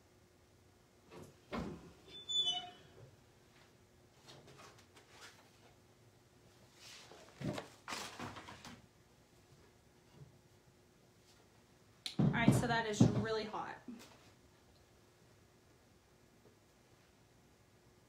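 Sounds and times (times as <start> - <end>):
short squeak: 2.1 - 2.9.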